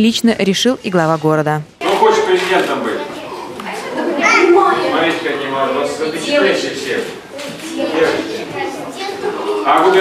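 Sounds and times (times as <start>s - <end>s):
children talking: 2.6s - 10.0s
children calling out: 3.0s - 5.4s, 7.3s - 10.0s.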